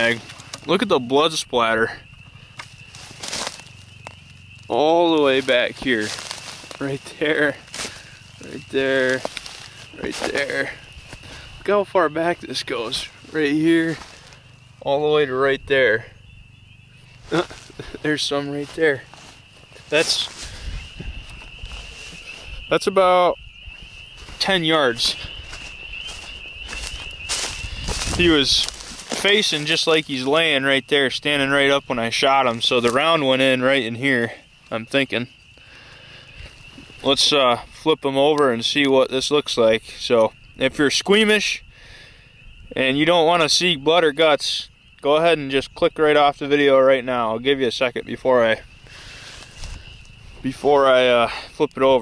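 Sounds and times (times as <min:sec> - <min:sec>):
quiet outdoor background: 0:00.0 - 0:52.0
rustle in dry grass: 0:01.7 - 0:38.8, 0:48.1 - 0:52.0.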